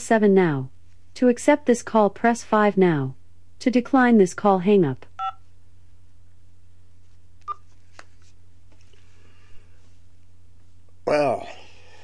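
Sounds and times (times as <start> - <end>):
telephone line hum: 5.2 - 5.5.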